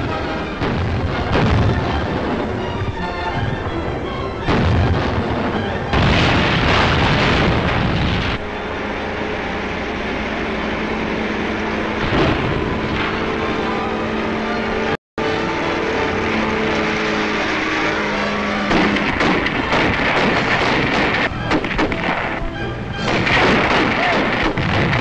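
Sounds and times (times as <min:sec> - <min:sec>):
engine-like drone: 0:00.0 - 0:25.0
noisy rumble: 0:00.0 - 0:25.0.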